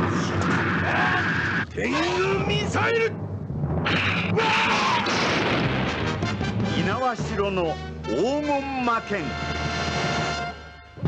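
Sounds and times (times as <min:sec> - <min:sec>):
explosion blasts: 0:00.0 - 0:06.8
music: 0:00.2 - 0:11.0.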